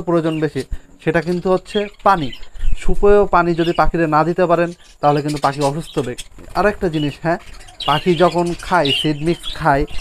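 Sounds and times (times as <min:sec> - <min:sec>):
person talking: 0:00.0 - 0:10.0
budgerigars chirping: 0:00.1 - 0:10.0.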